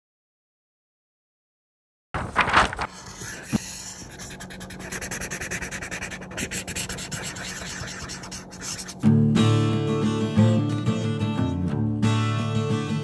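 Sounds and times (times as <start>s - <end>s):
marker scratching on paper: 3.0s - 9.0s.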